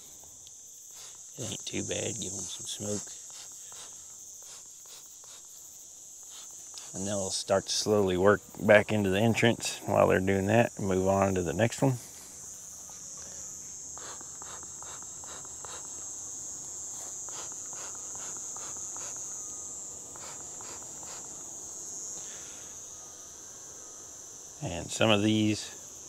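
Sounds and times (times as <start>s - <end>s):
crickets chirring: 0.0s - 26.0s.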